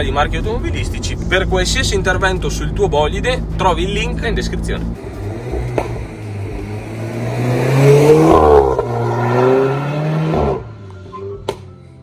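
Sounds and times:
car engine driving past: 4.8s - 11.5s.

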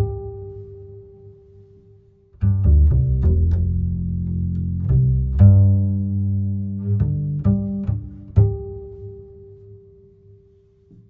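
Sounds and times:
low string music: 0.0s - 11.0s.

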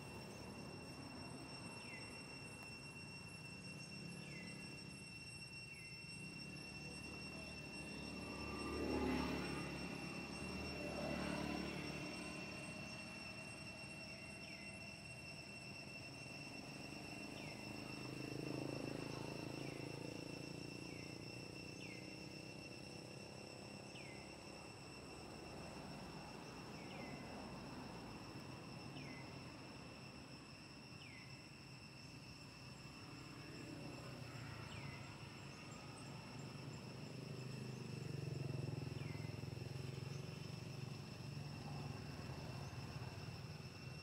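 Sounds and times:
high insect-like drone: 0.0s - 44.0s.

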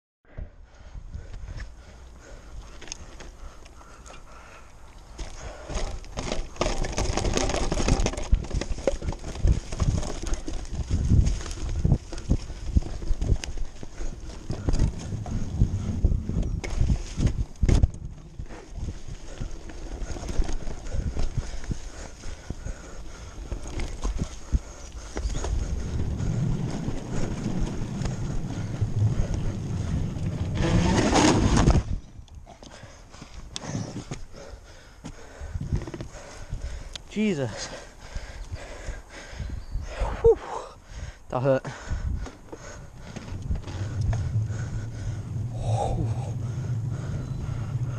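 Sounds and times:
wind rumble: 5.0s - 34.6s, 37.7s - 47.9s
mountain bike rattling and knocking: 5.1s - 33.3s, 34.0s - 39.4s, 41.6s - 47.9s.

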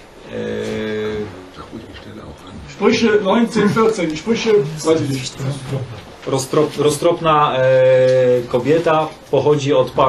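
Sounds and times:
man humming in hesitation: 0.2s - 1.5s.

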